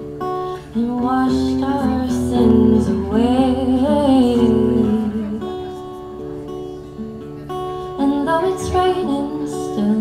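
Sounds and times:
acoustic guitar chords: 0:00.0 - 0:10.0
woman singing: 0:00.6 - 0:06.0, 0:07.9 - 0:10.0.

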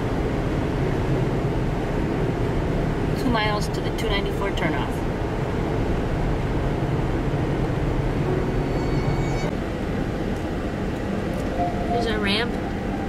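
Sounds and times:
car road and engine noise: 0:00.0 - 0:13.0
faint high whine: 0:07.4 - 0:13.0.

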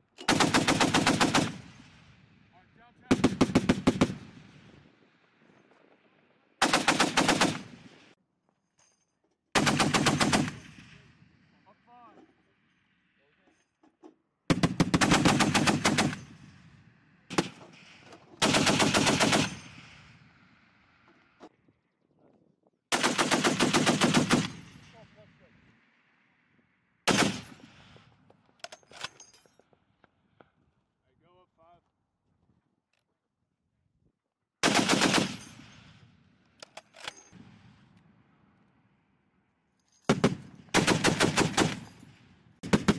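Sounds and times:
heavy machine gun bursts: 0:18.4 - 0:19.7
gunfire echo: 0:27.1 - 0:28.1.

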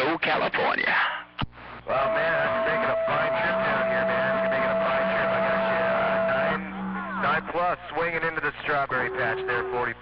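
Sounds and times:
garbled radio voices: 0:00.0 - 0:10.0
radio whistle and hum: 0:01.6 - 0:10.0
person speaking on radio: 0:07.2 - 0:10.0.

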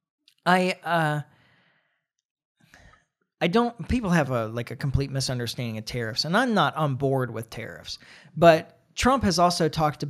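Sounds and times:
faint intake of breath: 0:08.0 - 0:08.4.

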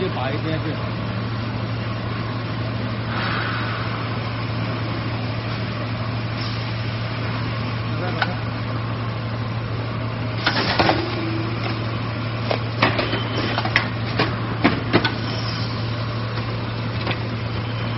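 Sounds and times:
machine motors and rollers humming: 0:00.0 - 0:17.9.

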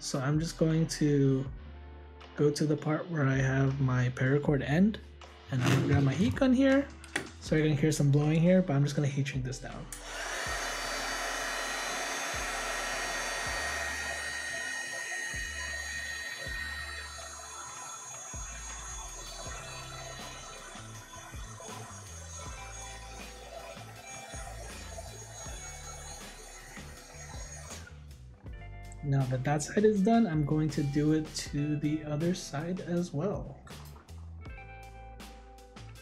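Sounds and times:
heat gun blowing: 0:09.9 - 0:28.1.

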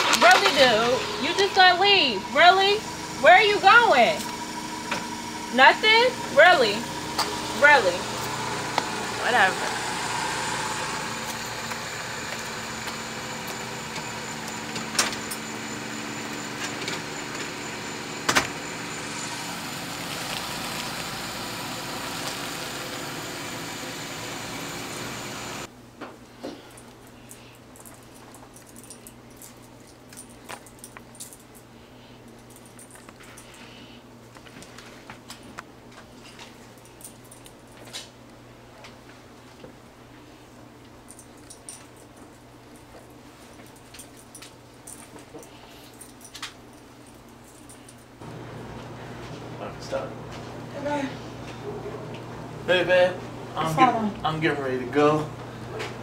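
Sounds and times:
car engine running: 0:00.0 - 0:25.7.

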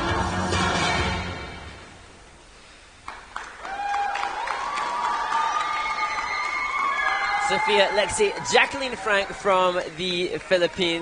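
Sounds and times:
audience clapping: 0:03.0 - 0:11.0
crowd cheering: 0:03.4 - 0:11.0.

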